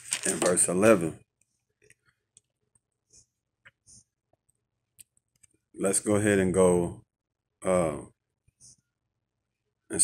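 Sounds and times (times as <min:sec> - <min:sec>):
person speaking: 0:00.0 - 0:01.3, 0:05.0 - 0:08.8.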